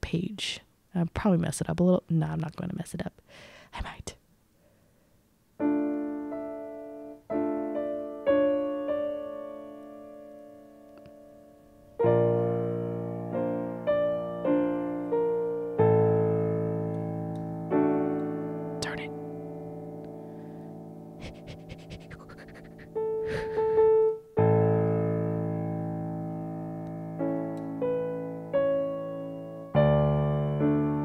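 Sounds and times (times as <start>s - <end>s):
slow piano chords: 5.6s - 31.0s.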